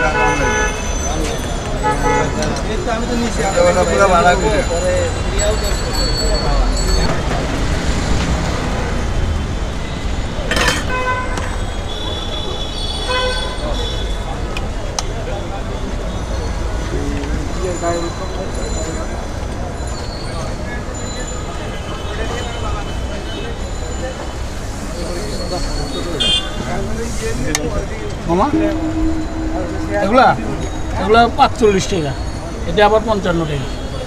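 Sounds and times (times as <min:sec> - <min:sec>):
car horn toots: 0:00.0 - 0:01.0, 0:01.8 - 0:02.5, 0:10.8 - 0:14.2, 0:26.2 - 0:26.7, 0:28.3 - 0:32.0
traffic rumble: 0:00.0 - 0:34.0
indistinct voices: 0:13.6 - 0:34.0.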